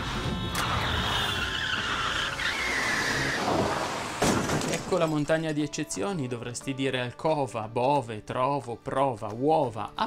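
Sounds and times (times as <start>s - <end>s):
car tyres squealing in a skid: 0.0s - 4.5s.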